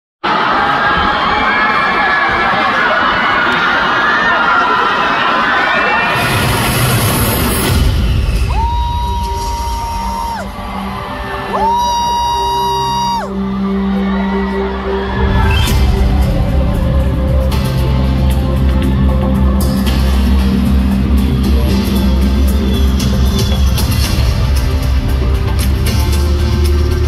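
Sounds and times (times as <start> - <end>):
crowd screaming and cheering: 0.2 - 27.0.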